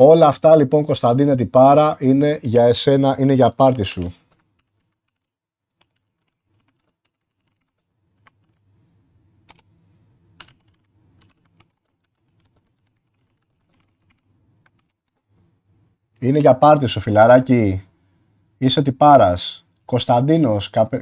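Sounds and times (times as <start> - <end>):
computer keyboard keystrokes: 3.7 - 8.6, 9.4 - 9.7, 10.4 - 15.2.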